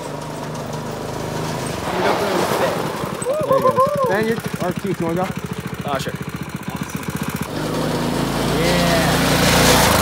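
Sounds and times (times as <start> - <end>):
go-kart engine running: 0.0 - 10.0.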